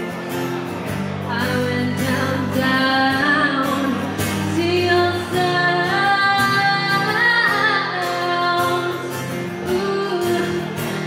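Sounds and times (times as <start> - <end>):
acoustic guitar: 0.0 - 11.0
woman singing: 1.2 - 11.0.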